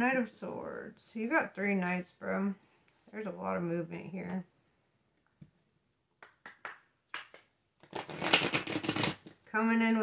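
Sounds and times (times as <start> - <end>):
cards being shuffled: 7.8 - 9.4.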